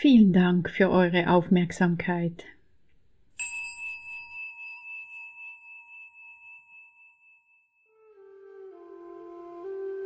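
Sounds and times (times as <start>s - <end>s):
meditation bell ringing: 3.4s - 8.2s.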